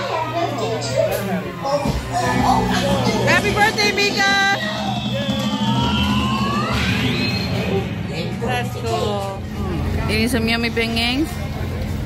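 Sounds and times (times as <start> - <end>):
steady hum: 0.0 - 12.0
music: 1.8 - 12.0.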